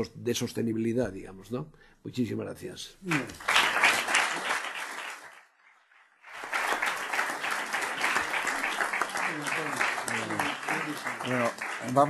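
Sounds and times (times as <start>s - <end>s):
audience applause: 3.0s - 5.5s, 6.2s - 12.0s.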